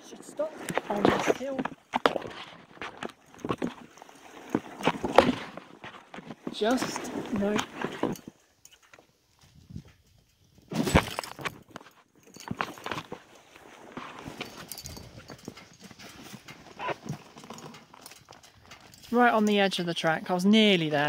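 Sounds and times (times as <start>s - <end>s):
basket scraping across a field: 0.0s - 8.4s, 12.5s - 19.2s.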